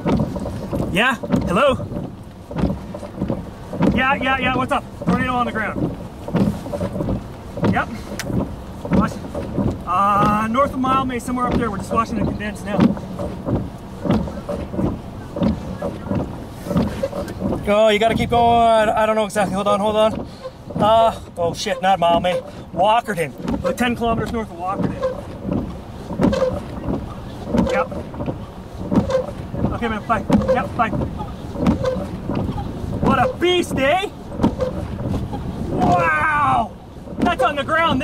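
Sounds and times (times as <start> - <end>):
gusty wind buffeting microphone: 0.0 - 38.0.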